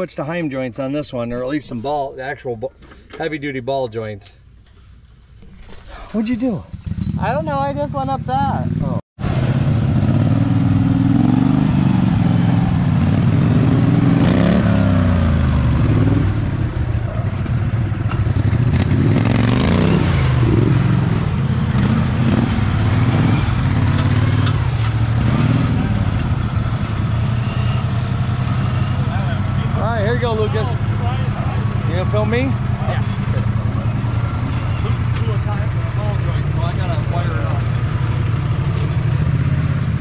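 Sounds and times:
small engine revving: 18.2s - 27.9s.

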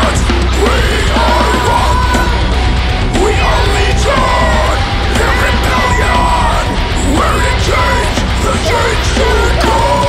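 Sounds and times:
metal band playing live: 0.0s - 10.0s
yelled vocals: 0.0s - 10.0s.

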